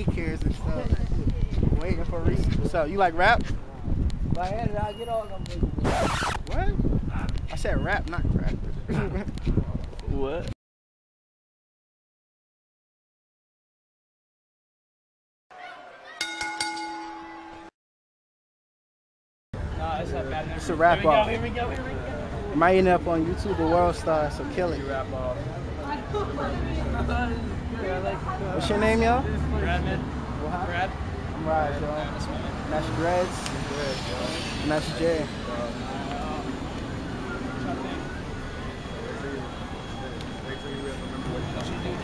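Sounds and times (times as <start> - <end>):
voices speaking indistinctly: 0.0 - 10.4, 19.6 - 42.0
boxing ring bell ringing: 16.2 - 17.7
passing traffic rumble: 19.6 - 42.0.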